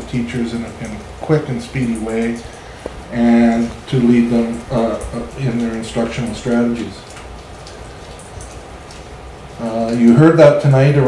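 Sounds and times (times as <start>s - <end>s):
even hiss: 0.0s - 11.0s.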